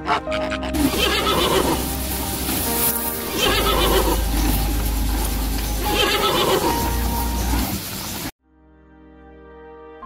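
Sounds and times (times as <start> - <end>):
horse whinnying: 0.4 - 1.8, 3.3 - 4.4, 5.8 - 6.9.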